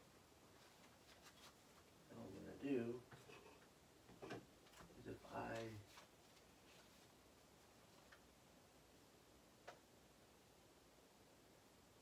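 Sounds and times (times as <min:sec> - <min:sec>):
faint clicks: 0:09.6 - 0:09.9.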